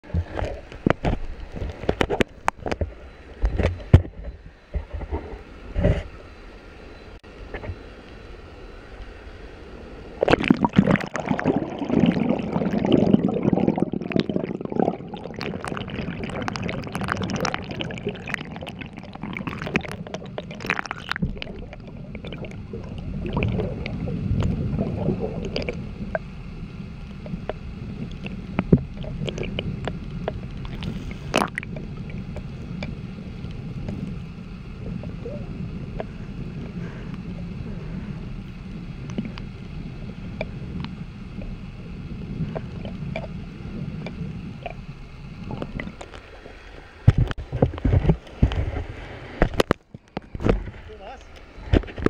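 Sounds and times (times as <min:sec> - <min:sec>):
muffled flowing water underwater: 0:00.0 - 0:52.0.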